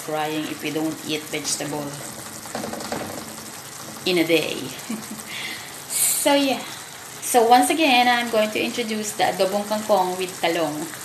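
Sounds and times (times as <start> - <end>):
vegetables sizzling in a wok: 0.0 - 11.0.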